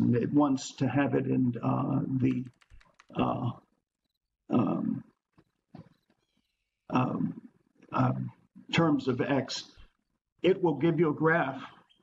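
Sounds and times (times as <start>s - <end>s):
man making hesitation sounds: 0.0s - 3.8s, 4.5s - 5.2s, 6.9s - 9.8s.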